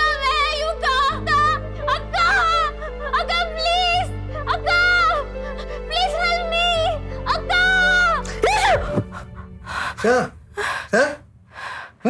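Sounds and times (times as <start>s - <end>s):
woman gasping breaths: 9.0s - 12.0s.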